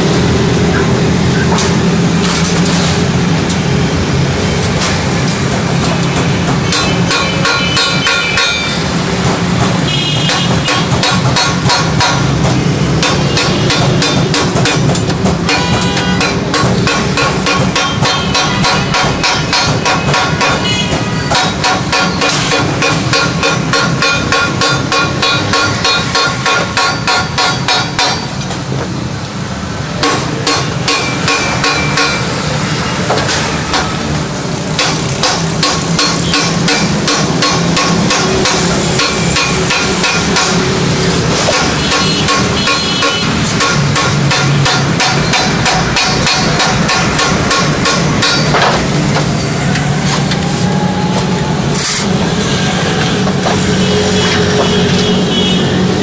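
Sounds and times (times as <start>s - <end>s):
wooden mallet striking steel sheet: 5.2s - 28.7s, 30.0s - 32.5s, 34.8s - 49.4s.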